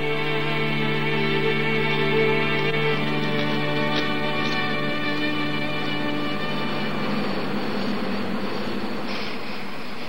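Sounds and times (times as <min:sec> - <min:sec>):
held musical chord: 0:00.0 - 0:09.1
high hiss: 0:00.0 - 0:10.0.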